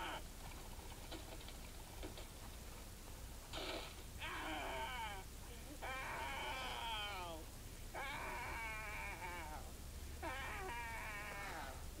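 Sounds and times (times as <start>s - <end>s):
cartoon voice crying in wails: 5.8s - 7.4s, 8.0s - 11.8s.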